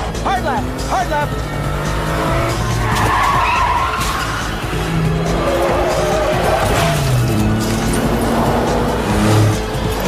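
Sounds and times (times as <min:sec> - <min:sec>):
car engines running hard: 0:00.0 - 0:10.0
film score music: 0:00.0 - 0:10.0
tyres skidding: 0:00.0 - 0:10.0.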